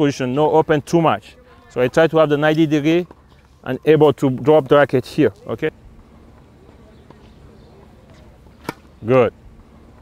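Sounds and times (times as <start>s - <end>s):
faint outdoor background: 0.0s - 10.0s
tennis racket striking ball: 8.6s - 9.0s.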